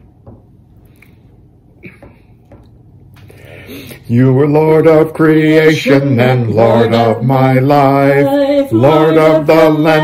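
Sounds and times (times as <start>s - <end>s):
man drawing a breath: 3.3s - 4.1s.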